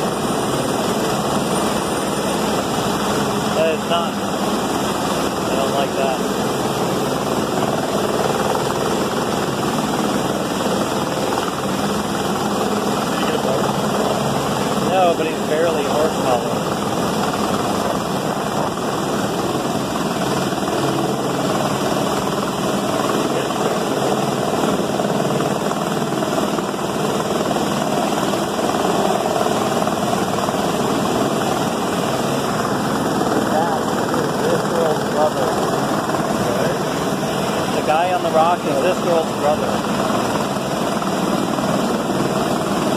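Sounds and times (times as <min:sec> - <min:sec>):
helicopter rotor and engine: 0:00.0 - 0:42.9.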